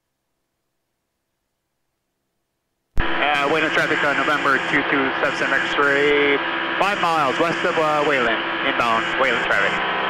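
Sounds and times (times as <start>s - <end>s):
radio hiss: 3.0s - 10.0s
voice over aircraft radio: 3.1s - 9.8s.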